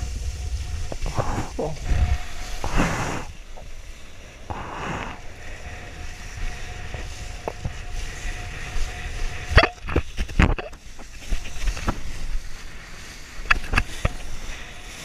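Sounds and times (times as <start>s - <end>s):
water rushing under board: 0.0s - 15.0s
wind buffeting microphone: 0.0s - 15.0s.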